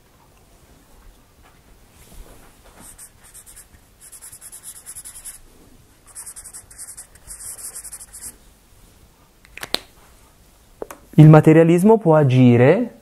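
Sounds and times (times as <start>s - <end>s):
pen scratching on paper: 2.8s - 5.4s, 6.1s - 8.3s.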